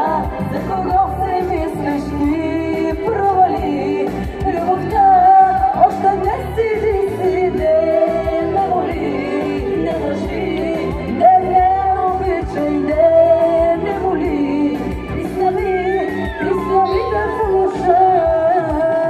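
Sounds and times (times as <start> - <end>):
amplified musical accompaniment: 0.0 - 19.0
woman singing into a microphone: 0.0 - 19.0.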